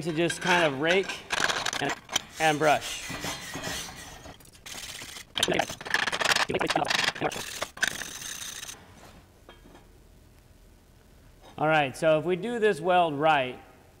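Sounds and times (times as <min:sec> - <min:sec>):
wire brush scrubbing metal: 0:00.0 - 0:08.7.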